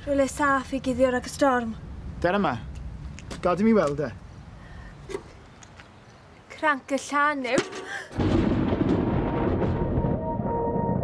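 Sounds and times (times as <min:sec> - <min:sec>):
loud rumble: 0:08.2 - 0:11.0.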